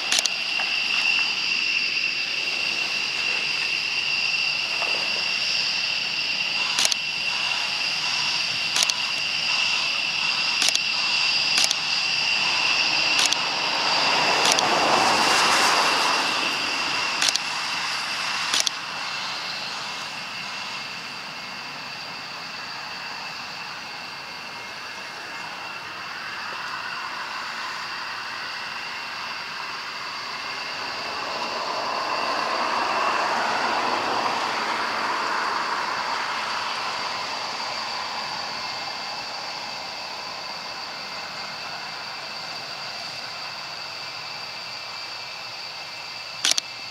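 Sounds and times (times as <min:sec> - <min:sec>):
sharp clicks: 0:00.0 - 0:01.3, 0:06.6 - 0:13.5, 0:14.4 - 0:14.9, 0:17.2 - 0:17.5, 0:18.4 - 0:18.8, 0:46.4 - 0:46.7
distant jet engine roar: 0:00.0 - 0:46.9
steady high whine: 0:00.0 - 0:46.9.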